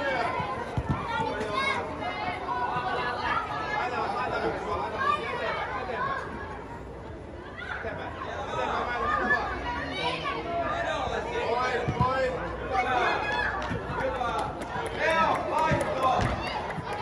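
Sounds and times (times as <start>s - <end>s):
overlapping chatter of many voices: 0.0s - 17.0s.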